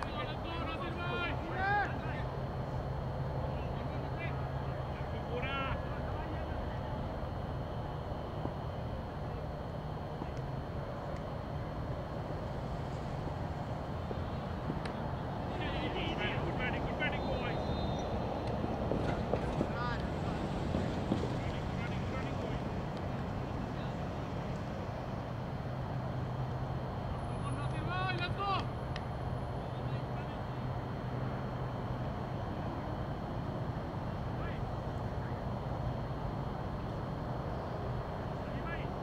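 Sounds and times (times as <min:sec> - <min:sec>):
distant players shouting: 0:00.0 - 0:07.0, 0:13.2 - 0:24.8, 0:25.4 - 0:35.6
steady low hum: 0:00.0 - 0:39.0.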